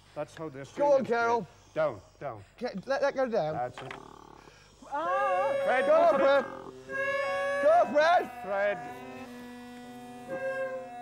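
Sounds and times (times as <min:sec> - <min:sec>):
bagpipe drones humming: 0:04.8 - 0:11.0
wavering high bagpipe note: 0:04.8 - 0:11.0.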